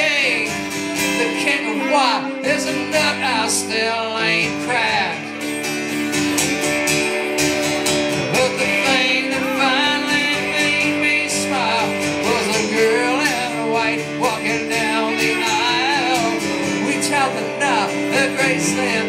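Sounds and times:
man singing: 0.0s - 5.4s, 8.2s - 19.0s
lead guitar: 0.0s - 19.0s
strummed acoustic guitar: 0.0s - 19.0s.

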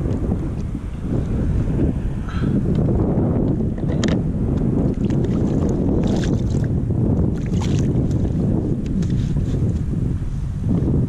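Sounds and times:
wind rumble on microphone: 0.0s - 11.0s.

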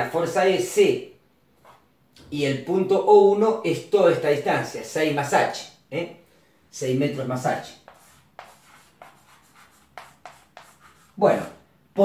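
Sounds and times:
chalk writing on blackboard: 1.6s - 1.8s, 7.5s - 11.6s.

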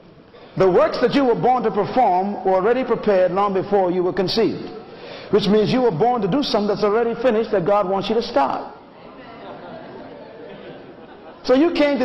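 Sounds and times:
murmur of a congregation: 0.0s - 12.0s.

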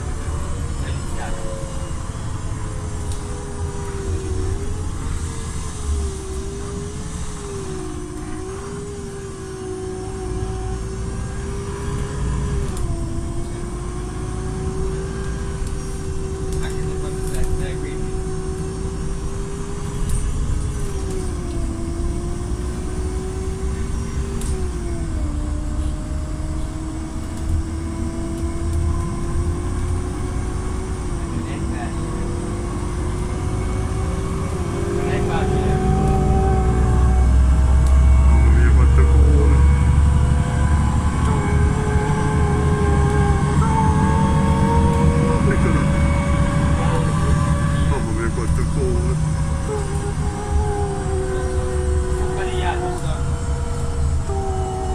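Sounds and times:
bus engine and road rumble: 0.0s - 54.9s
whining tone: 0.0s - 54.9s.

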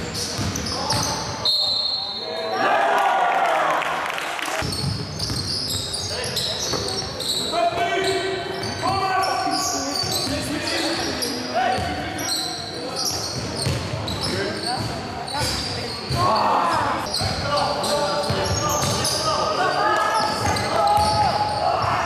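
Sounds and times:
basketball bouncing on wooden court: 0.2s - 1.1s, 13.4s - 16.3s, 20.4s - 21.6s.

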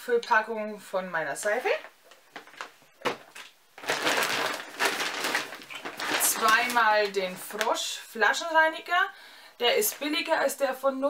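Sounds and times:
shopping bag rustling and crinkling: 2.3s - 7.9s.

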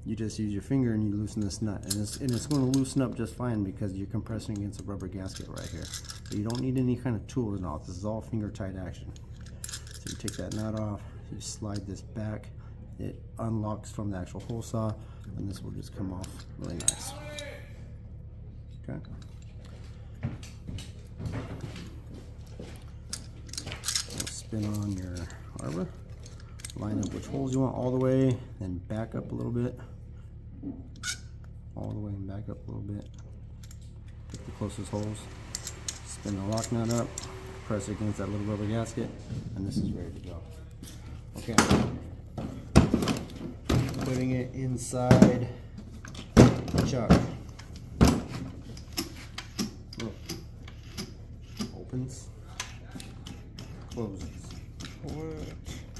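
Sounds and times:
metal clicks and scrapes: 4.5s - 6.8s, 23.1s - 28.1s, 33.0s - 37.4s, 48.6s - 55.9s.

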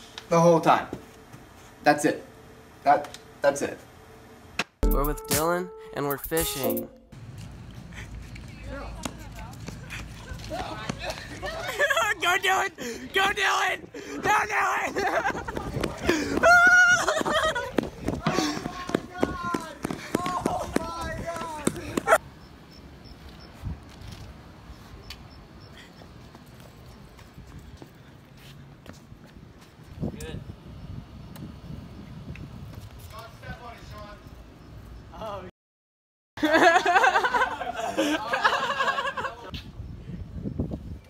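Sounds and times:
voices talking and laughing: 8.0s - 22.2s, 36.4s - 39.7s
footfalls on concrete: 8.4s - 11.6s, 15.5s - 22.2s
wind rumble on microphone: 29.9s - 33.7s, 39.5s - 41.0s.

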